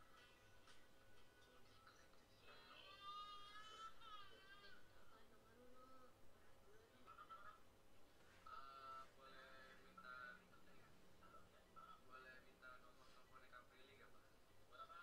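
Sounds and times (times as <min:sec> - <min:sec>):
faint wavering background music: 0:00.0 - 0:15.0.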